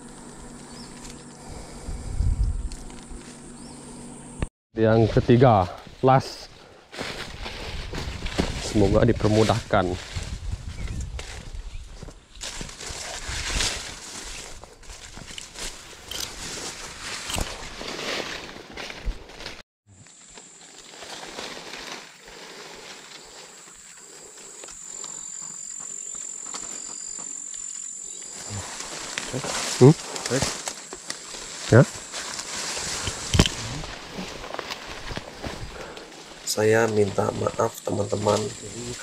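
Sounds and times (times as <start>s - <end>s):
rustling leaves and fronds: 0.0s - 4.4s, 5.0s - 39.0s
high-pitched insect drone: 0.0s - 4.5s, 22.0s - 34.0s, 36.5s - 39.0s
footsteps on path: 10.2s - 19.6s, 21.0s - 36.4s.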